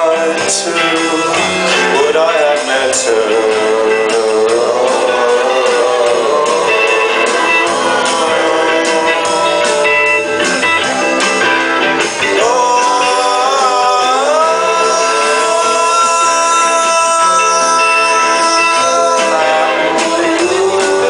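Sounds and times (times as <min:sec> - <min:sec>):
drums: 0:00.0 - 0:21.0
electric guitars: 0:00.0 - 0:21.0.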